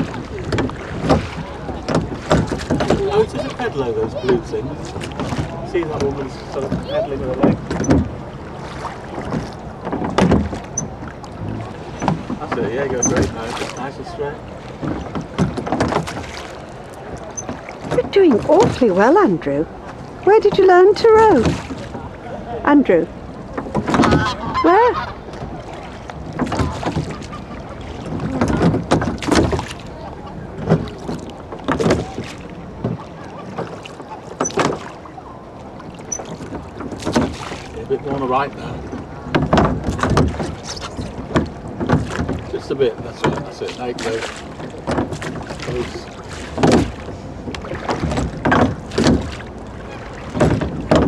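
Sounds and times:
oar blades splashing water: 0.0s - 51.0s
oars knocking in rowlocks: 0.0s - 51.0s.

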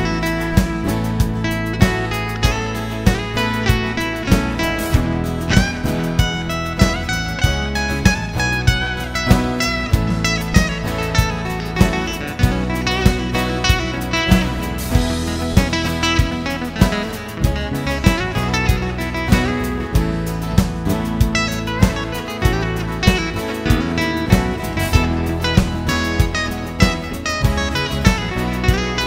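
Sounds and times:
acoustic guitar lead lines: 0.0s - 29.0s
rhythm guitar: 0.0s - 29.0s
steady beat: 0.0s - 29.0s.

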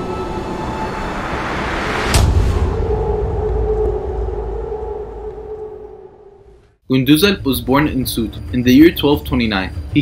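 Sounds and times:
low rumble: 0.0s - 6.8s.

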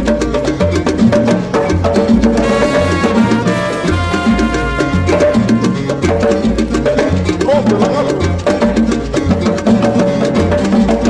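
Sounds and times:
hand percussion: 0.0s - 11.0s
repeating bass line: 0.0s - 11.0s.

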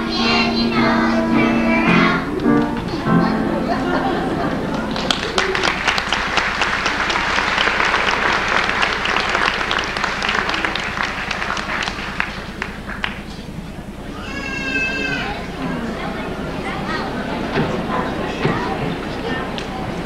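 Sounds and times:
audience clapping: 2.0s - 3.0s, 4.2s - 13.8s.

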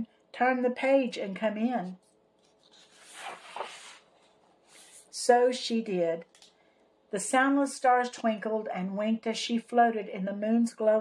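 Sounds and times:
book page turning: 2.0s - 5.1s.

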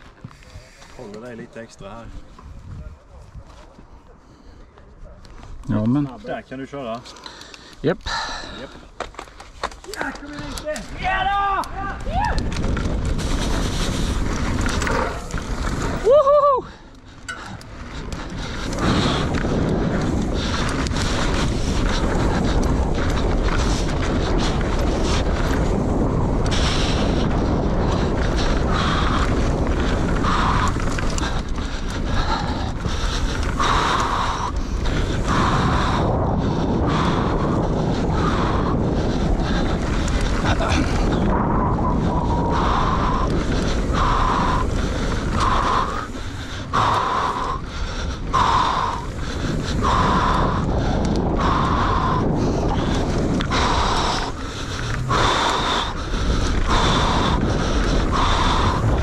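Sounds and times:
bike tyre noise: 0.0s - 59.0s
wind buffeting microphone: 0.0s - 59.0s
bike rattling over ground: 8.7s - 59.0s.

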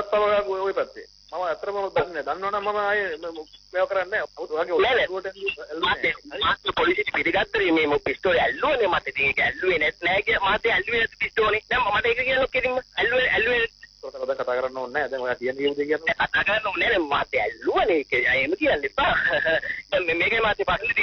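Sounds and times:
faint high hiss: 0.0s - 21.0s
radio talk show voices: 0.0s - 21.0s.

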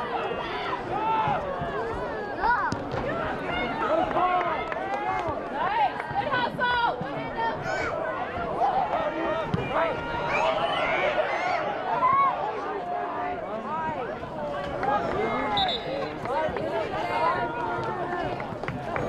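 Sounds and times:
crowd shouting: 0.0s - 19.0s.

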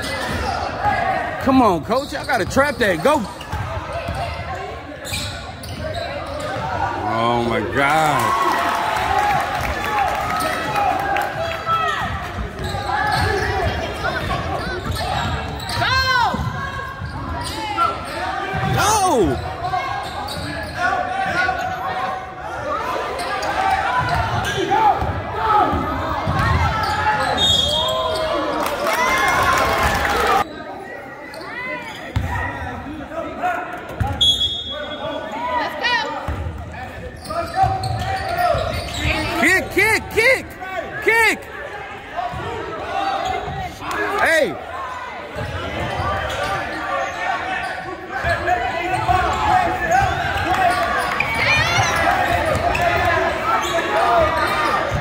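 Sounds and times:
sneakers squeaking: 0.0s - 8.1s, 11.6s - 28.8s, 30.4s - 32.7s, 33.9s - 41.4s, 42.1s - 55.0s
spectators' voices: 0.0s - 55.0s.

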